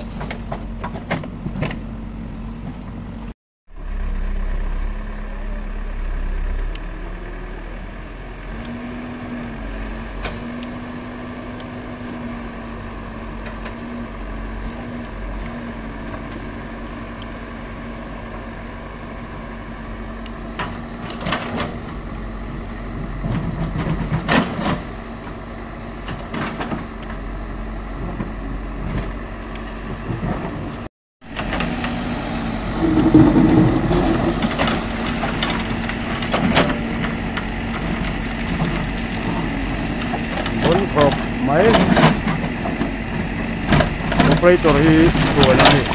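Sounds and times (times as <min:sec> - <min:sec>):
diesel engine running: 0:00.0 - 0:45.9
bucket knocking and scraping on stone: 0:32.8 - 0:35.4.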